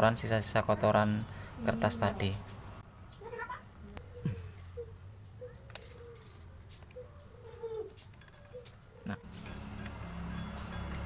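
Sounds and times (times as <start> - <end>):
metal tool scraping: 8.0 - 11.0.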